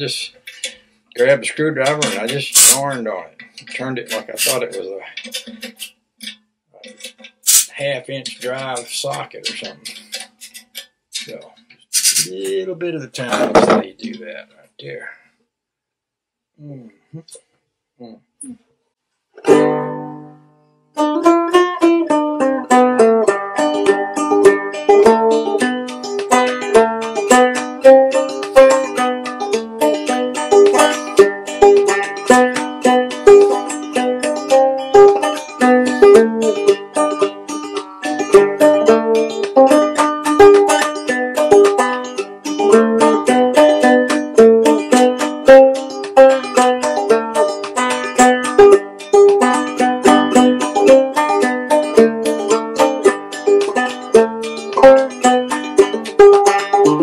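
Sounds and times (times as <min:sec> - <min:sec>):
banjo plucked tune: 0:00.0 - 0:15.0, 0:19.4 - 0:57.0.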